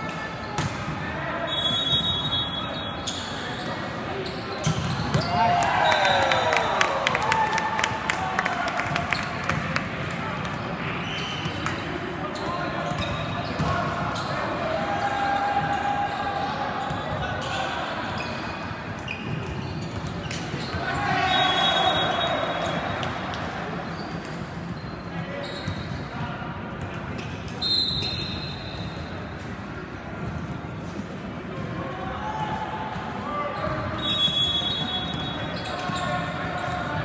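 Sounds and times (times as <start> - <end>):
indistinct voices in gym: 0.0 - 37.0
referee's whistle: 1.4 - 3.7, 4.7 - 6.8, 20.6 - 22.8, 27.6 - 29.0, 33.9 - 36.1.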